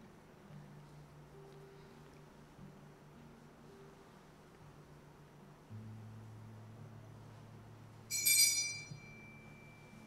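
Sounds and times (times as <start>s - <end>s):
metal chalice clinking: 8.1s - 9.2s.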